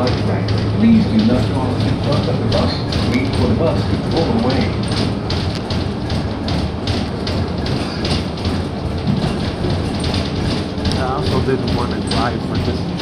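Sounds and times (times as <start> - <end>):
bus engine hum: 0.0 - 13.0
rattles: 0.0 - 13.0
road noise: 0.0 - 13.0.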